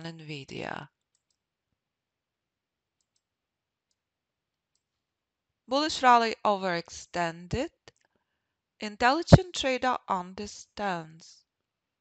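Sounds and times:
faint computer mouse clicks: 0:01.1 - 0:01.4, 0:03.0 - 0:03.3.

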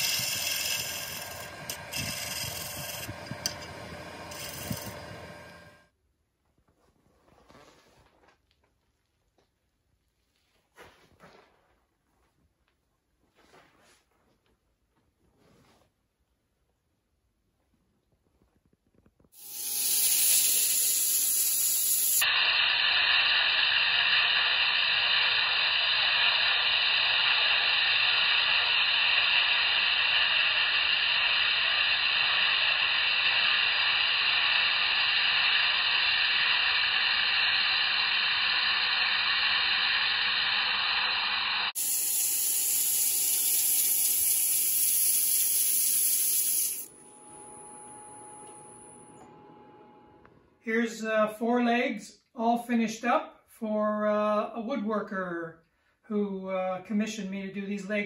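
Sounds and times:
sanding wood on a lathe: 0:00.0 - 0:05.7, 0:19.4 - 0:22.3, 0:41.7 - 0:46.9.

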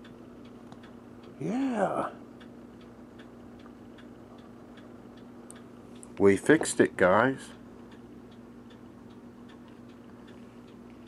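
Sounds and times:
faint regular ticking: 0:00.0 - 0:11.0
low electrical hum: 0:00.0 - 0:11.0.

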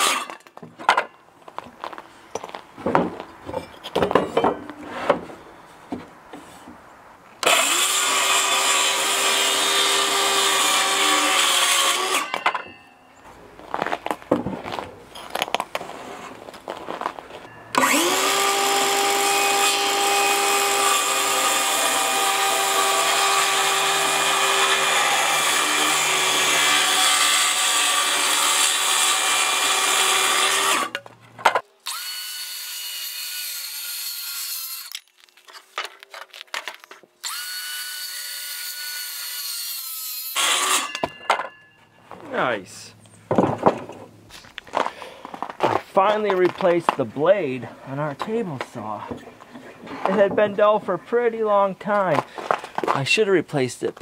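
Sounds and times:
circular saw cutting wood: 0:00.0 - 0:00.4, 0:07.4 - 0:12.6, 0:17.7 - 0:31.0, 0:31.8 - 0:35.0, 0:37.2 - 0:41.1
boards and tools knocking: 0:00.6 - 0:01.1, 0:02.8 - 0:05.3, 0:43.3 - 0:44.1.

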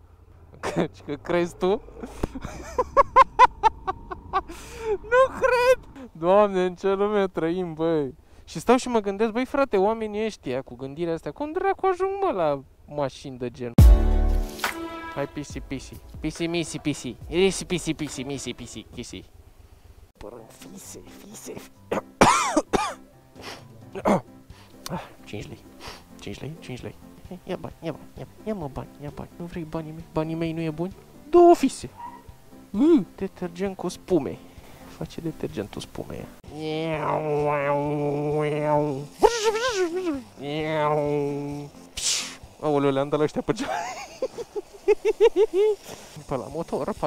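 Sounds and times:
person calling a cat: 0:36.5 - 0:41.3
cat meowing: 0:36.8 - 0:38.2.

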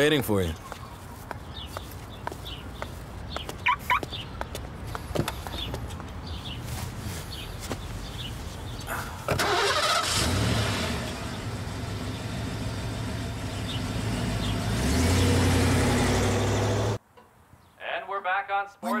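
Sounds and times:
car engine starting and revving: 0:09.3 - 0:17.0.

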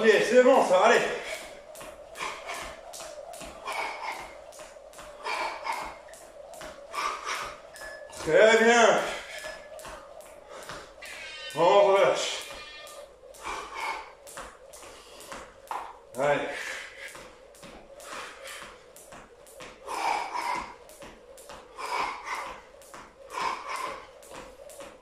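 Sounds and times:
jump rope slapping tile floor: 0:00.0 - 0:25.0.

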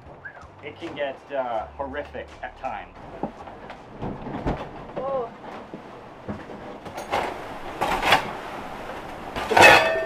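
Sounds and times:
hull knocking and rattling: 0:03.0 - 0:09.9
rushing water: 0:06.9 - 0:10.0.

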